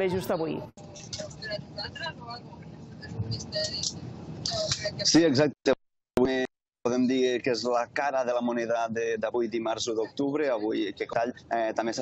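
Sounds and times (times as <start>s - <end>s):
bus engine and road rumble: 0.0s - 5.7s, 6.3s - 12.0s.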